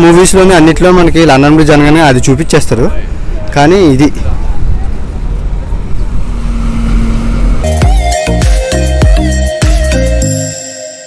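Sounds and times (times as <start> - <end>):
traffic rumble: 0.0 - 8.9
low engine hum: 4.4 - 8.4
music with a beat: 7.7 - 11.0.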